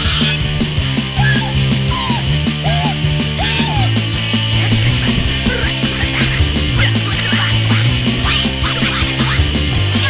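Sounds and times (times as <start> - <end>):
punk rock song: 0.0 - 10.0.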